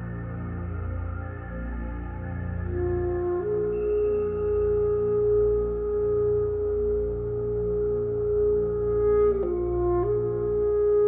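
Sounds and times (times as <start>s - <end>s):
low electronic drone: 0.0s - 11.0s
alto saxophone long note: 2.7s - 11.0s.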